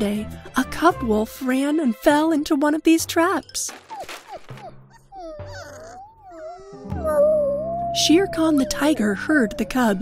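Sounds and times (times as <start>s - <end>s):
background music: 0.0s - 10.0s
cartoon wolf cub whining cry: 3.9s - 10.0s.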